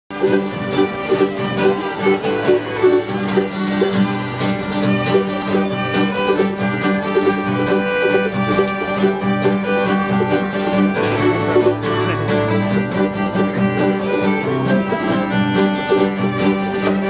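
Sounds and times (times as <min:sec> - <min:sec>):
fiddles playing melody: 0:00.1 - 0:17.0
strummed acoustic guitar: 0:00.1 - 0:17.0.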